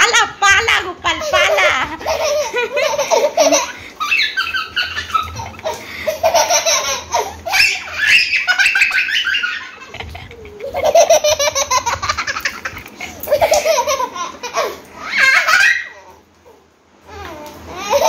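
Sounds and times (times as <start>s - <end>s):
toddler laughing loudly: 1.2s - 16.1s, 17.7s - 18.0s.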